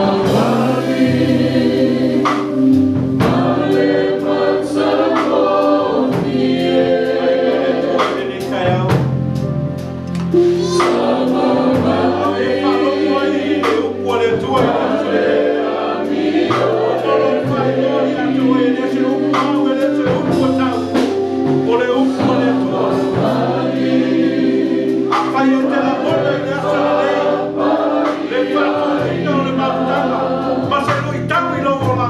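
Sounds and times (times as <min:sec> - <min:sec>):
gospel choir singing: 0:00.0 - 0:32.0
steady bass line: 0:08.2 - 0:32.0.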